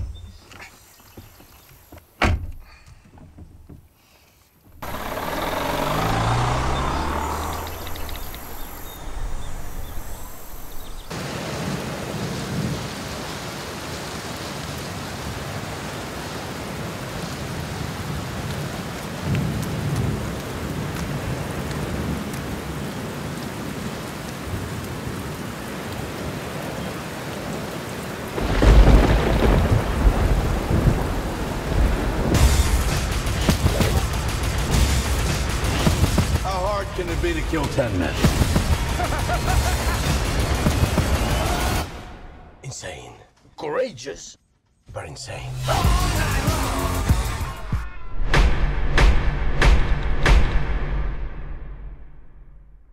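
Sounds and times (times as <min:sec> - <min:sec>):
rain and storm: 0:04.4 - 0:43.9
car engine: 0:04.7 - 0:11.1
thunder rumble: 0:04.8 - 0:12.9, 0:28.2 - 0:42.6.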